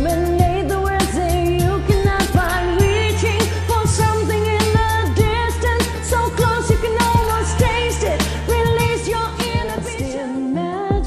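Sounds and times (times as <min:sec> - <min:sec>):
backing track with heavy bass: 0:00.0 - 0:11.0
woman singing pop song: 0:00.0 - 0:11.0.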